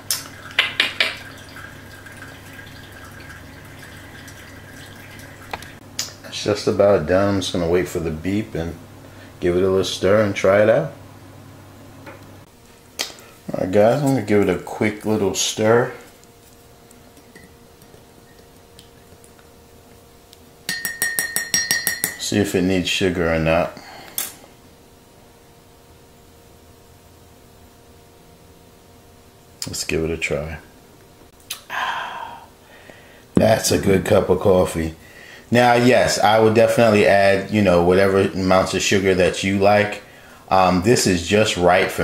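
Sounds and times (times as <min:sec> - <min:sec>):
faint room hum: 0:00.0 - 0:42.0
coffee dripping into a glass mug: 0:00.2 - 0:05.8
spoon clinking in glass mug: 0:20.7 - 0:22.2.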